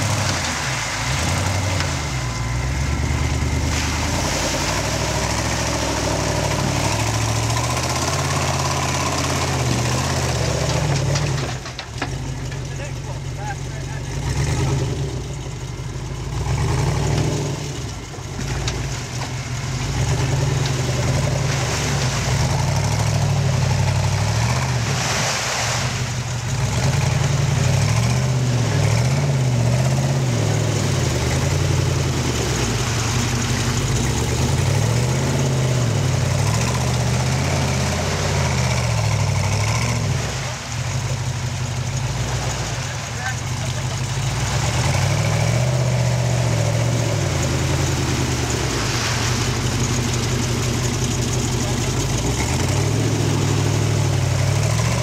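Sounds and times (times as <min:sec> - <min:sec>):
truck engine revving: 0:00.0 - 0:55.0.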